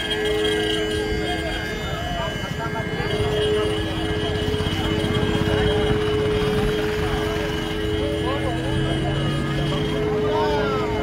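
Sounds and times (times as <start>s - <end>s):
crowd murmuring: 0.0s - 11.0s.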